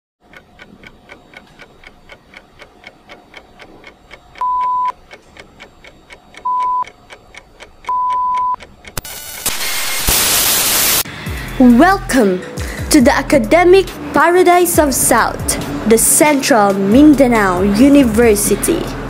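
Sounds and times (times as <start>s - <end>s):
rapid clock-like ticking: 0.2s - 9.1s
static hiss: 9.0s - 11.1s.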